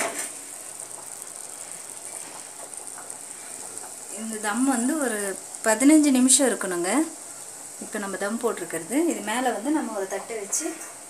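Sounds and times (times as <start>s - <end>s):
cooking hiss: 0.0s - 11.0s.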